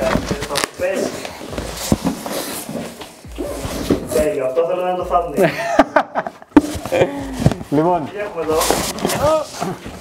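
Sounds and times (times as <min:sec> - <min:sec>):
cardboard scraping and rustling: 0:06.7 - 0:10.0.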